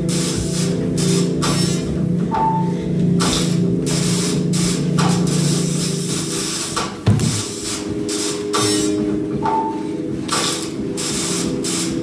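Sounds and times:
low sustained drone: 0:07.3 - 0:11.9.

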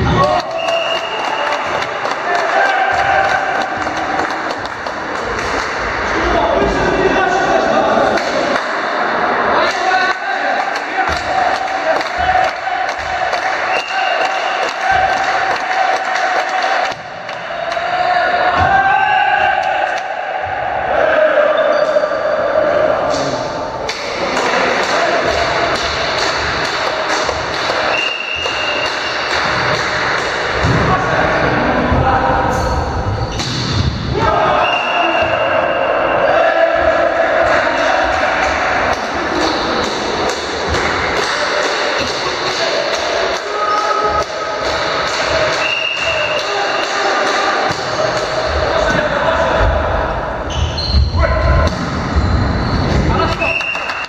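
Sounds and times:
players shouting: 0:00.0 - 0:54.0.

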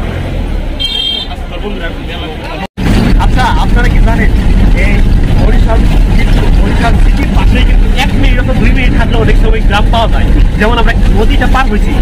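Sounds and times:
bus engine rumble: 0:00.0 - 0:12.0
road noise: 0:00.0 - 0:12.0.

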